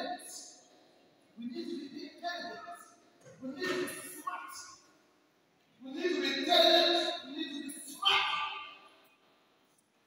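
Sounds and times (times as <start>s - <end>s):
man exclaiming into microphone: 5.8s - 8.8s.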